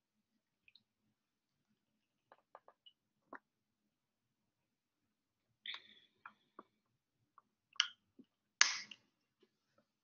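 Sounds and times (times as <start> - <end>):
sharp snap: 8.6 - 9.0.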